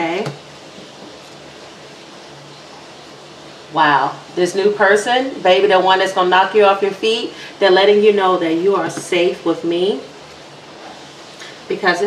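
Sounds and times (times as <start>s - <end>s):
steady background hiss: 0.0s - 12.0s.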